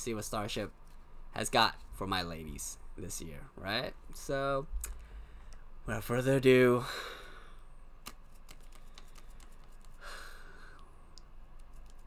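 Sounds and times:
computer keys clicking: 0:08.0 - 0:10.0, 0:11.1 - 0:12.0.

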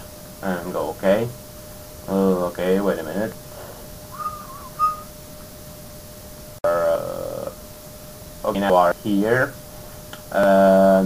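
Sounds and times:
hummed voice sound: 0:04.1 - 0:05.1
man whistling: 0:04.1 - 0:05.1.

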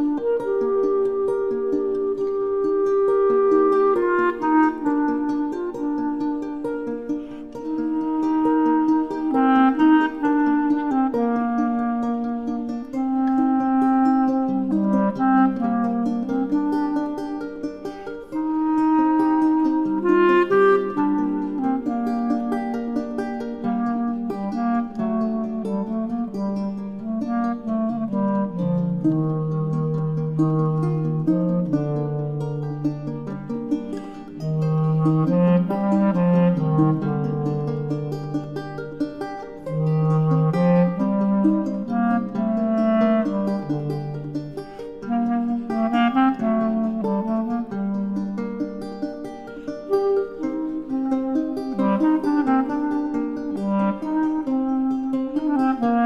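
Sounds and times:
clarinet melody: 0:00.0 - 0:56.0
plucked lute: 0:00.0 - 0:56.0.

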